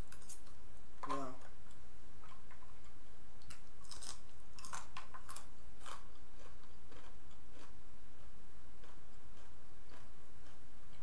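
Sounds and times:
chewing: 1.7 - 11.0
crisp crunches: 3.8 - 6.0.

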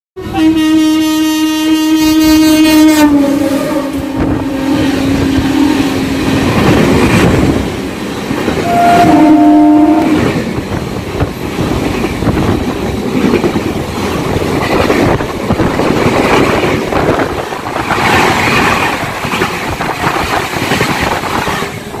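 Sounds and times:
train horn: 0.2 - 6.4, 8.6 - 10.5
train coaches rumbling past: 0.2 - 22.0.

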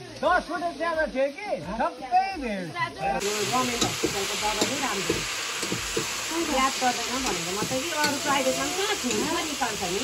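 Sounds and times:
food sizzling in a wok: 0.0 - 10.0
voices: 0.0 - 10.0
utensil stirring: 3.2 - 10.0.

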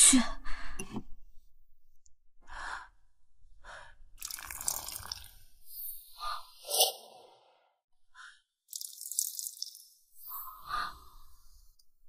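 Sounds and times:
tea splashing on floor: 8.7 - 10.0.

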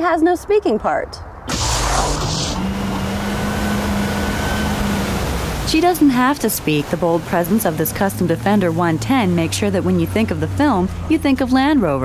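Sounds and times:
low engine hum: 1.5 - 12.0
water splashing: 1.5 - 12.0.

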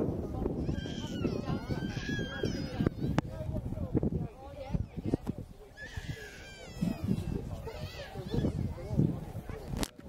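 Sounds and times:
voices: 0.0 - 10.0
wind buffeting microphone: 0.0 - 10.0.

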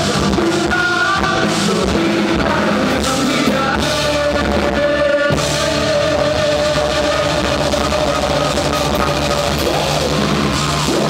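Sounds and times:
pop-rock band playing live: 0.0 - 11.0.

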